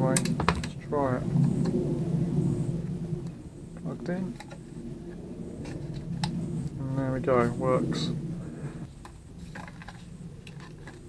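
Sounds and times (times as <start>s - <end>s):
handling noise rumbling: 0.0s - 11.0s.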